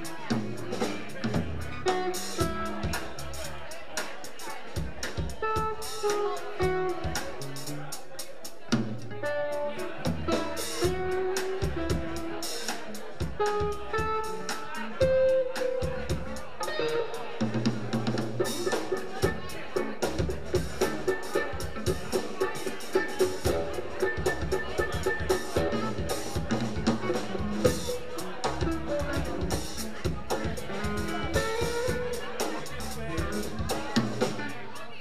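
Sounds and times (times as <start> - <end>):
bass guitar: 0.0 - 35.0
drum kit playing: 0.0 - 35.0
electric guitar melody: 5.4 - 7.5, 9.1 - 12.5, 13.4 - 34.6.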